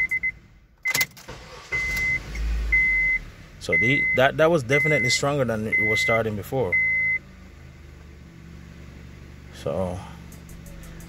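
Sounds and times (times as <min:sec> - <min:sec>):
ignition key click: 0:00.0 - 0:02.4
car engine idling: 0:00.0 - 0:11.0
starter cranking engine: 0:00.9 - 0:02.6
high steady beep: 0:01.7 - 0:07.2.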